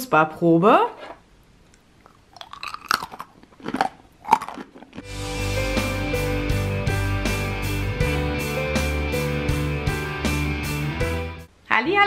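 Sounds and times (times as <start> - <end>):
chewing crunchy almonds: 2.0 - 5.1.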